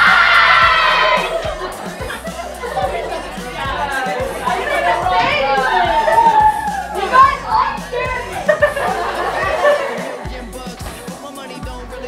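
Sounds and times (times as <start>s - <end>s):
girls talking and calling out: 0.0s - 12.0s.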